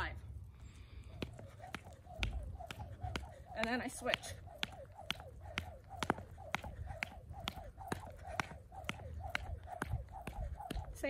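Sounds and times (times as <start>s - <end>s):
jump rope slapping mat: 1.2s - 11.0s.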